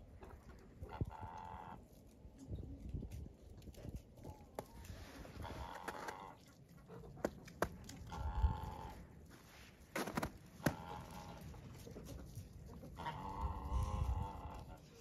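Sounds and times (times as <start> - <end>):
hens calling: 0.8 - 1.8, 4.7 - 6.6, 7.2 - 9.4, 10.0 - 15.0.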